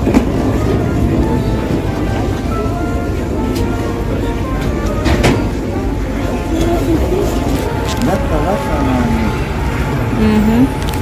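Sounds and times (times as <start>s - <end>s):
boat engine rumble: 0.0s - 11.0s
passengers' voices: 0.0s - 11.0s.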